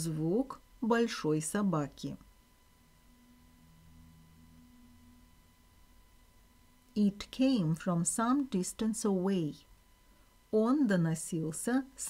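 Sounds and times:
faint low hum of held tones: 0.0s - 12.0s
thin high whine: 0.0s - 12.0s.

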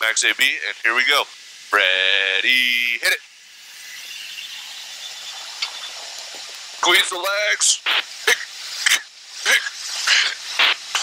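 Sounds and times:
jet cockpit noise hiss: 0.0s - 11.0s.

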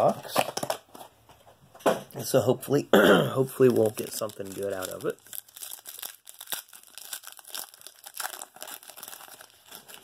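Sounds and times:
foil pack crinkling and tearing: 3.6s - 10.0s.

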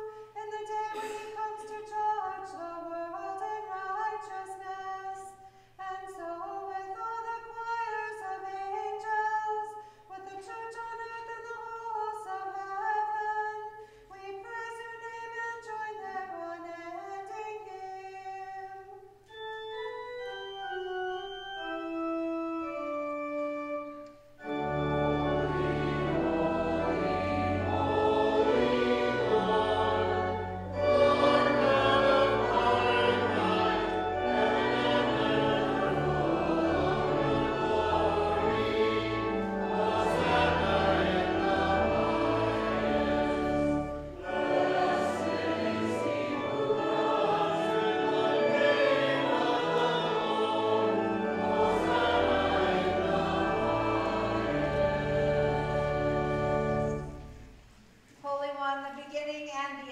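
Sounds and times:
organ sustained low notes: 19.2s - 57.8s
group singing a hymn: 24.4s - 57.4s.

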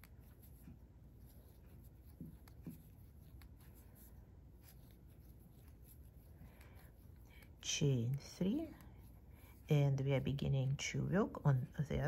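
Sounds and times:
crochet hook rustling thread: 0.0s - 12.0s.

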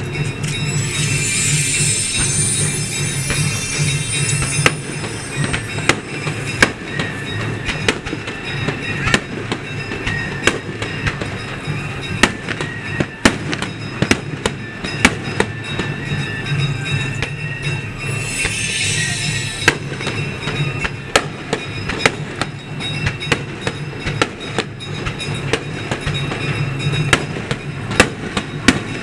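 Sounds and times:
fireworks bursting: 0.0s - 29.0s
music playing: 0.0s - 29.0s.

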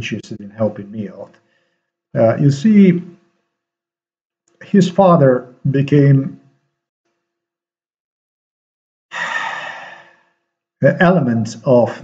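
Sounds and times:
man exhaling: 9.1s - 10.2s.

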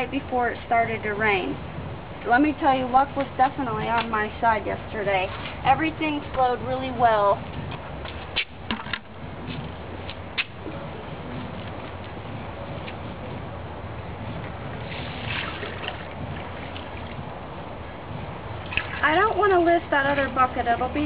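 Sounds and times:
low background rumble: 0.0s - 21.0s
water splashing in a plastic bucket: 14.8s - 17.4s, 18.6s - 19.4s.

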